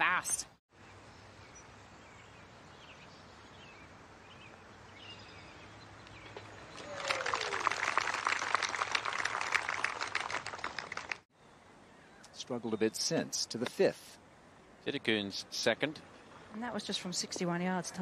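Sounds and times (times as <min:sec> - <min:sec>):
faint birdsong: 0:00.7 - 0:07.6, 0:11.3 - 0:17.3
crowd applauding: 0:06.7 - 0:11.2.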